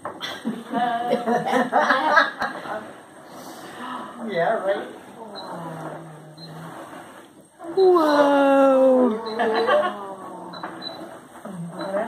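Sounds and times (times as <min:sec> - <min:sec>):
person humming low: 0:07.8 - 0:10.6.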